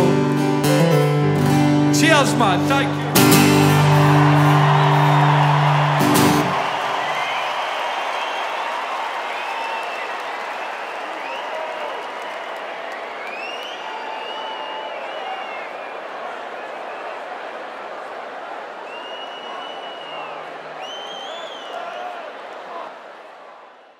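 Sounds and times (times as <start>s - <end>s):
stadium crowd cheering: 0.0s - 23.9s
crowd whistles: 3.2s - 23.9s.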